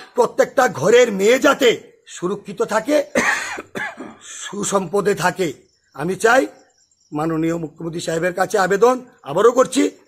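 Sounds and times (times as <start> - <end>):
harsh cough: 3.1 - 4.3.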